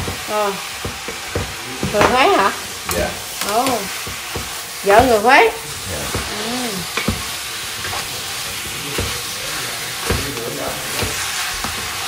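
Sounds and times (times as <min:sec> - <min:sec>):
food sizzling in a pot: 0:00.0 - 0:12.0
spatula stirring: 0:00.0 - 0:12.0.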